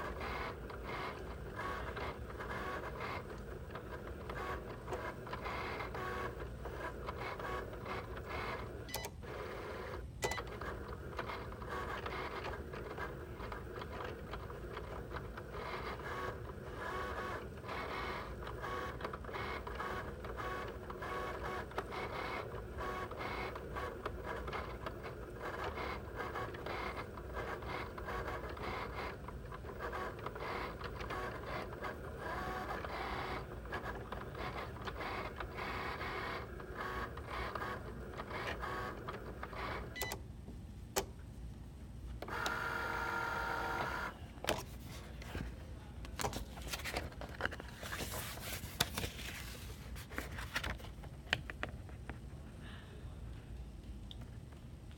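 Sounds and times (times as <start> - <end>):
cutting machine motors whirring: 42.2 - 44.2.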